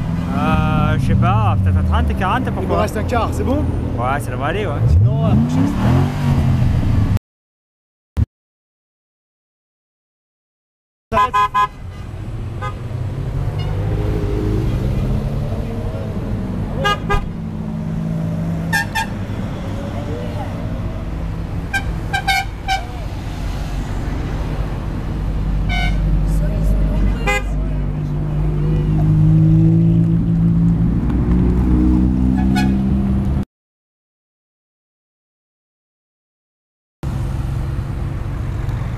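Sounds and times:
sports car engines pulling away: 0.0s - 7.2s, 12.2s - 22.2s, 22.9s - 33.4s
car horn toots: 11.1s - 12.8s, 16.8s - 17.3s, 18.7s - 19.2s, 21.7s - 23.0s, 25.7s - 26.0s, 27.2s - 27.6s, 32.3s - 32.8s.

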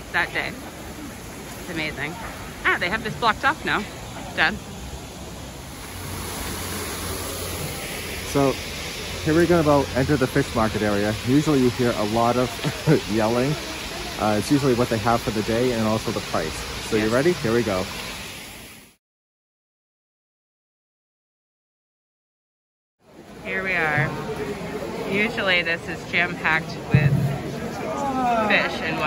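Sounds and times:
outdoor background noise: 0.0s - 19.0s, 23.0s - 29.0s
steady street rushing noise: 0.0s - 19.0s, 23.0s - 29.0s.

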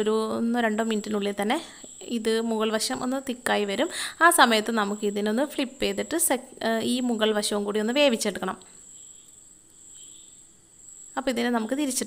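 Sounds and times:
woman speaking: 0.0s - 8.7s, 11.2s - 12.0s.

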